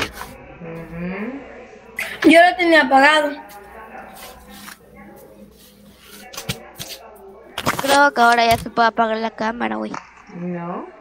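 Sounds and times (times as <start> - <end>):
indistinct voices over video call: 0.0 - 11.0.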